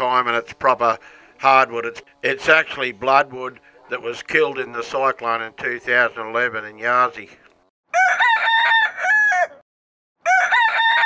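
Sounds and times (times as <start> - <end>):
rooster crowing: 7.9 - 9.6, 10.2 - 11.0.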